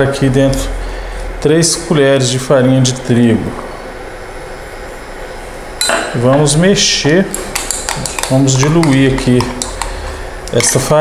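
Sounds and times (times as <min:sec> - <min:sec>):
background room noise: 0:00.0 - 0:11.0.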